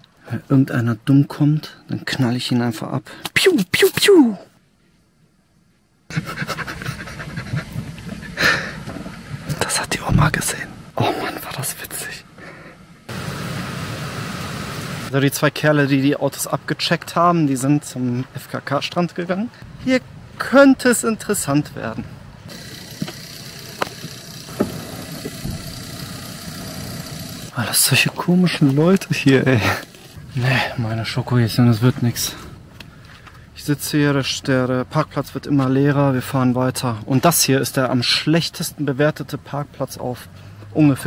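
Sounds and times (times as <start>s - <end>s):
man laughing behind hand: 6.1s - 8.8s
van engine idling: 22.5s - 27.8s.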